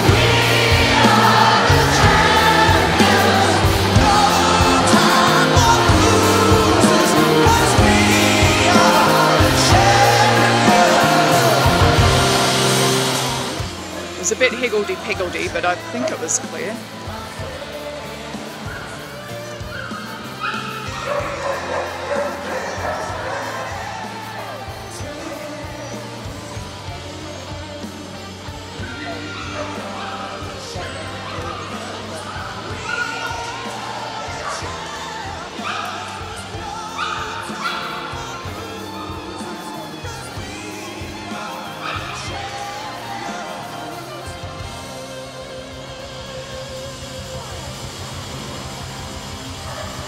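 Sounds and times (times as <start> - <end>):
music: 0.0 - 50.0
dog barking: 19.9 - 23.7.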